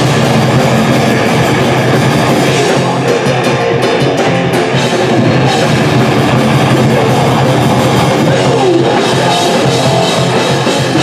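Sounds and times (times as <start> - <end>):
thrash metal band playing: 0.0 - 11.0.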